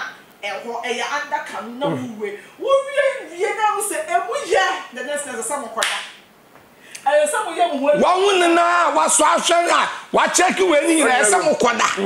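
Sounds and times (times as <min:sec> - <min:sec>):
hand clap: 0:05.8 - 0:06.2.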